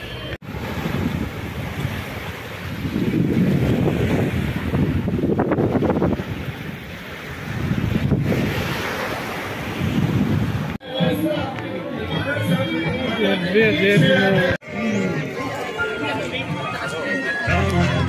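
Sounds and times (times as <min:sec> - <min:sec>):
small waves breaking on sand: 0:00.4 - 0:10.8
wind buffeting microphone: 0:00.4 - 0:10.8.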